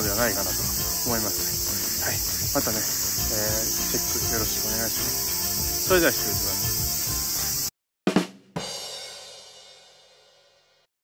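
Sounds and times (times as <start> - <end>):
cicadas chorus: 0.0 - 7.7.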